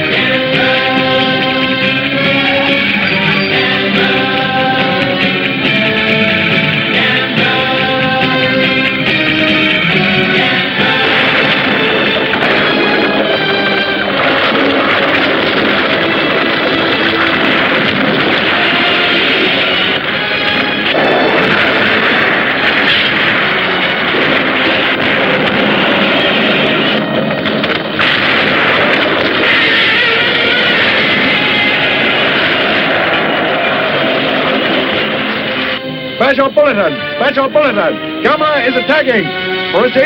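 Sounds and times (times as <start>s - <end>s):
rock band with electric guitar: 0.0s - 40.0s
booms and crashes: 0.1s - 36.9s.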